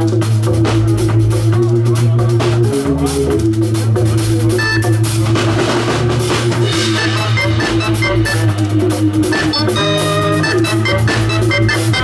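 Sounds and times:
drum kit beat: 0.0s - 12.0s
electric bass low notes: 0.0s - 12.0s
saxophone: 4.6s - 5.2s, 6.6s - 12.0s.

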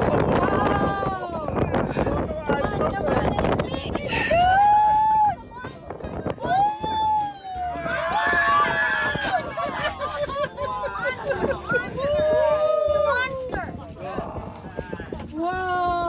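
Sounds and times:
people shouting excitedly: 3.8s - 5.8s, 6.4s - 13.7s.

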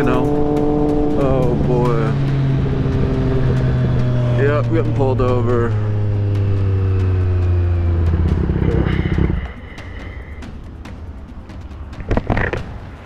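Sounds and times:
motorcycle engine slowing to idle: 5.3s - 9.6s.

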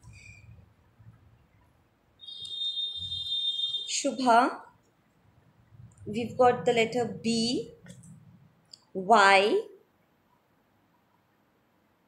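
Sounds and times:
steady high-pitched tone: 5.7s - 8.6s.

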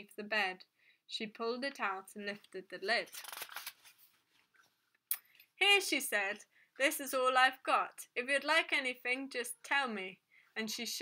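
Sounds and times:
book pages rustling: 3.1s - 4.8s.

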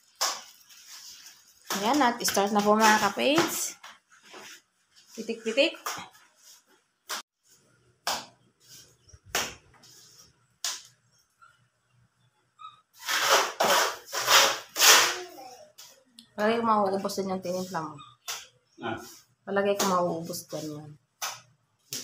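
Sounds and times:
trowel scraping mortar: 13.0s - 15.3s
trowel slapping mortar: 13.0s - 15.3s.

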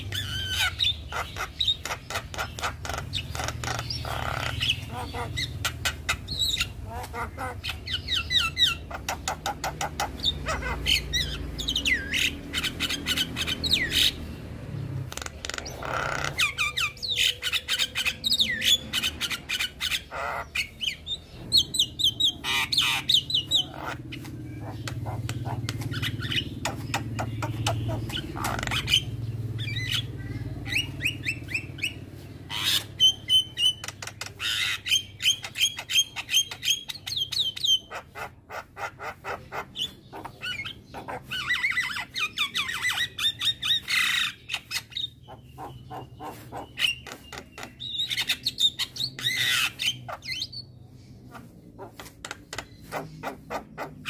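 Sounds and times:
bird singing with squawks and whistles: 0.0s - 54.0s.

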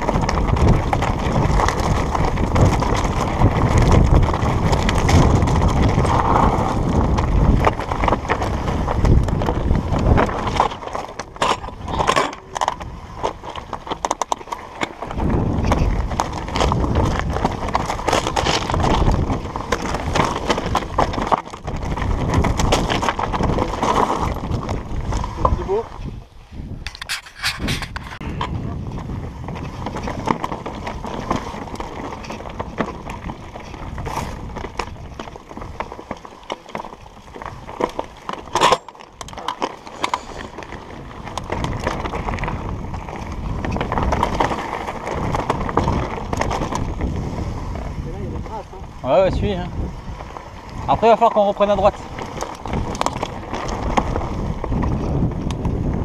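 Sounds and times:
bike clicks and rattles: 0.0s - 56.0s
bike tyres rolling over rocks: 0.0s - 56.0s.

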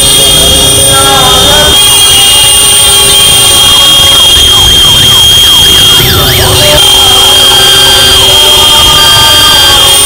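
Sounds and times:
siren-like wailing tone: 0.0s - 10.0s.

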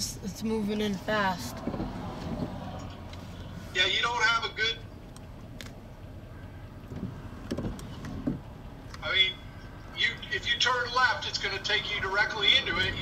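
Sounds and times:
voices: 0.0s - 5.2s, 8.8s - 13.0s
low rumble inside car: 0.0s - 13.0s.

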